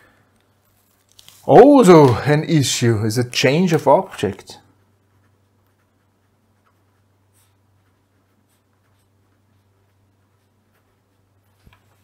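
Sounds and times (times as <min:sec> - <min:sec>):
low steady hum: 0:00.0 - 0:12.0
pen scratching on paper: 0:04.8 - 0:12.0.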